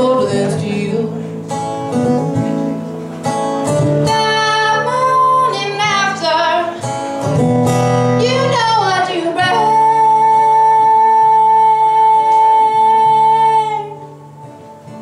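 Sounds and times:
woman singing: 0.0s - 1.4s, 4.0s - 6.9s, 8.1s - 14.3s
strummed acoustic guitar: 0.0s - 15.0s.

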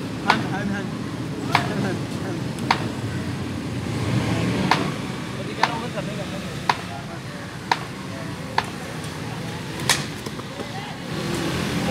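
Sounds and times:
distant voices murmuring: 0.0s - 11.9s.

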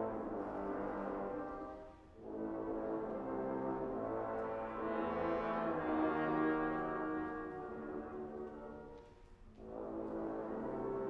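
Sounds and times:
trombone choir chords: 2.2s - 8.8s.

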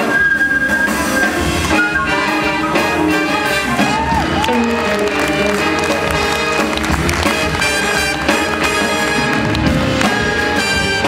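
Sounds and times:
jazz big band playing: 0.0s - 11.0s.

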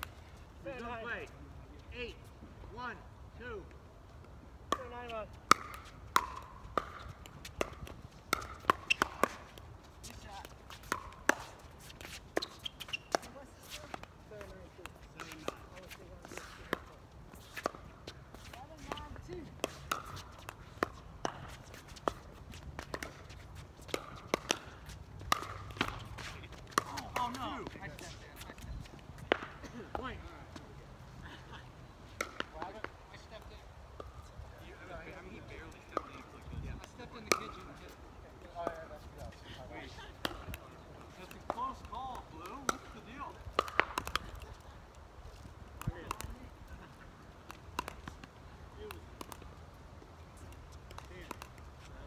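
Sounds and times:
faint players' voices: 0.1s - 52.0s
ball bouncing on court: 4.7s - 28.6s, 35.8s - 37.9s, 40.2s - 44.6s, 45.8s - 46.4s, 47.4s - 49.4s, 50.4s - 51.7s
paddles hitting plastic ball: 4.7s - 28.6s, 32.2s - 33.3s, 40.1s - 52.0s.

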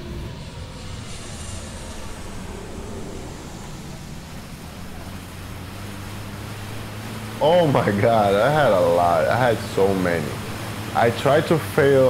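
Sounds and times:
low outdoor rumble: 0.0s - 12.0s
faint hiss: 0.3s - 12.0s.

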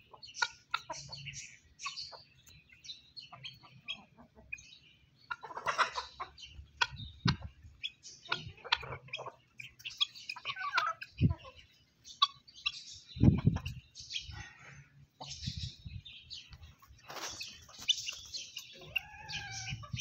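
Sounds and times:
chickens clucking: 0.0s - 20.0s.

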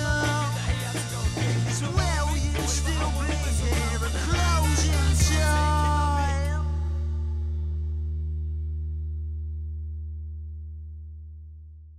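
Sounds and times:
electric guitar and bass chord: 0.0s - 11.9s.

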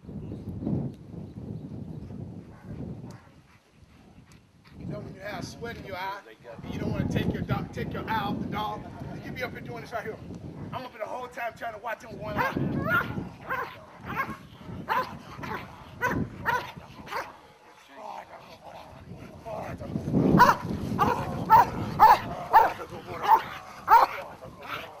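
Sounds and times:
dog barking: 12.4s - 17.3s, 20.4s - 24.2s.

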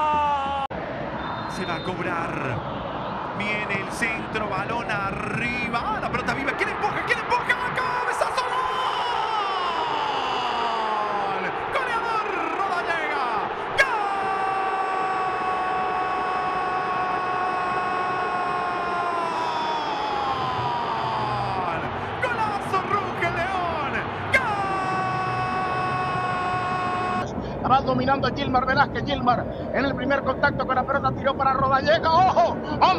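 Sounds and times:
commentator shouting goal cry: 14.9s - 27.3s.

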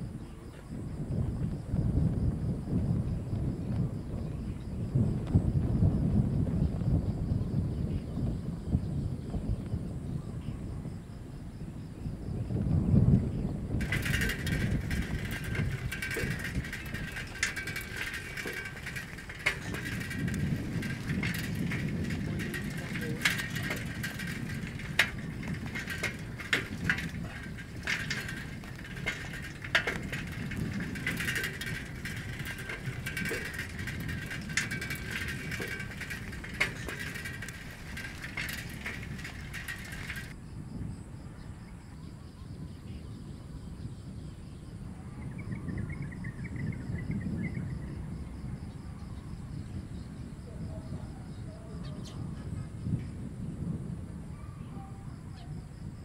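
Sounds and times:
bicycle frame and chain rattling: 13.7s - 40.4s
tyres rumbling on gravel: 13.8s - 40.4s.

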